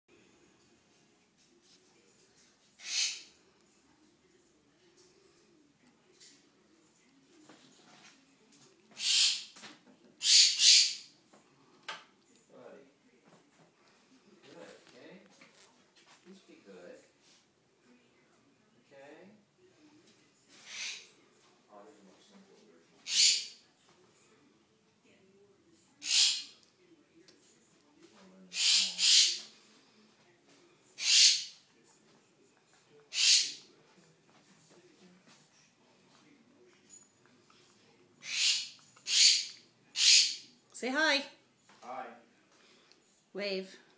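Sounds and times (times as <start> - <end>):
bird screeching: 2.8 - 3.3, 9.0 - 9.5, 10.2 - 11.0, 23.1 - 23.6, 26.0 - 26.5, 28.5 - 29.4, 31.0 - 31.5, 33.1 - 33.6, 38.2 - 40.4.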